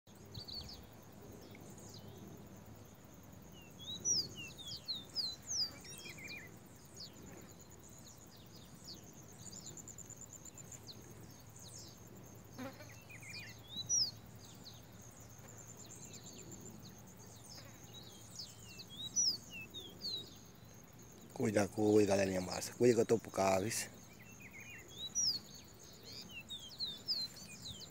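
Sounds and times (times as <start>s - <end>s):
high insect buzz: 0.2s - 27.9s.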